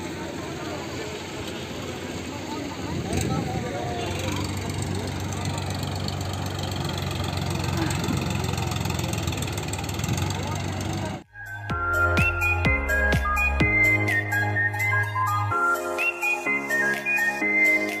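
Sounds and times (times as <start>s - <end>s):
people's voices: 0.0s - 11.3s
tractor engine running: 0.0s - 11.3s.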